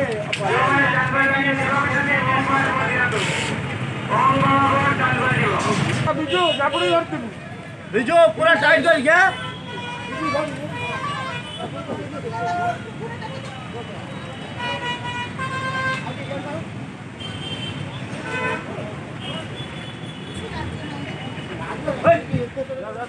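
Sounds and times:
people's voices: 0:00.0 - 0:15.1, 0:18.6 - 0:23.0
traffic rumble: 0:00.0 - 0:23.0
vehicle horns honking: 0:06.2 - 0:07.1, 0:09.0 - 0:11.8, 0:13.7 - 0:16.5, 0:17.2 - 0:20.5.

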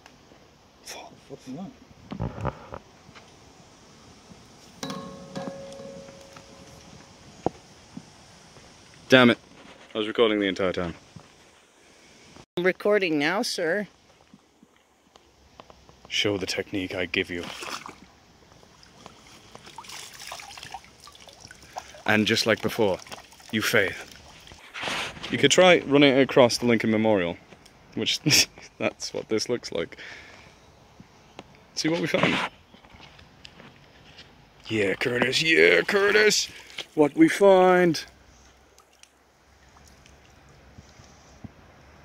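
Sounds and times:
water splashing and trickling: 0:16.8 - 0:25.2, 0:34.6 - 0:41.1
water dripping through mesh: 0:18.8 - 0:24.5, 0:38.7 - 0:40.5
soft ticks of wet net: 0:38.1 - 0:41.7.

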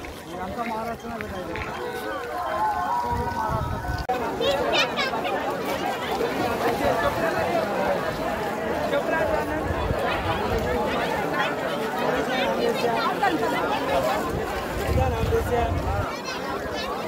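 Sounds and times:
crowd babble: 0:00.0 - 0:17.0.

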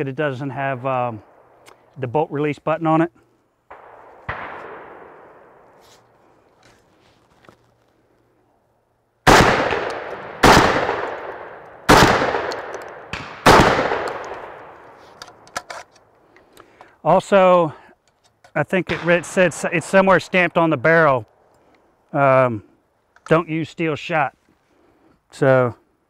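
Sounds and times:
shotgun shots with echo: 0:03.7 - 0:05.7, 0:09.3 - 0:15.0, 0:18.9 - 0:20.2.

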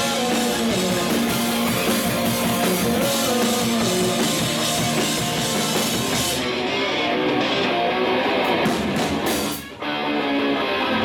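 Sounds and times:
bass: 0:00.0 - 0:11.0
drums: 0:00.0 - 0:11.0
electric guitar: 0:00.0 - 0:11.0.

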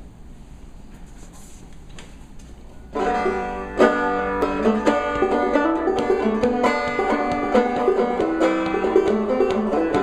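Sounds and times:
low room hum: 0:00.0 - 0:10.0
banjo notes: 0:02.9 - 0:10.0.

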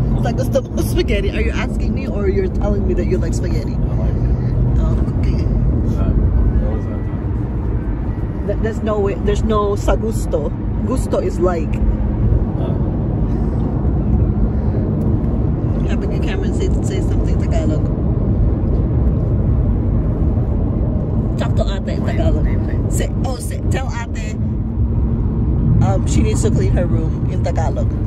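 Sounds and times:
car cabin road rumble: 0:00.0 - 0:28.0
people talking: 0:00.1 - 0:07.0, 0:08.4 - 0:11.8, 0:12.6 - 0:12.8, 0:15.8 - 0:17.9, 0:21.4 - 0:24.4, 0:25.8 - 0:28.0.

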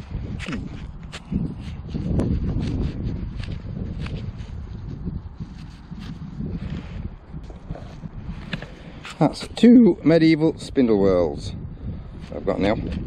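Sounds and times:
gloved hands rustling: 0:00.0 - 0:09.6
wind buffeting microphone: 0:00.0 - 0:13.0.

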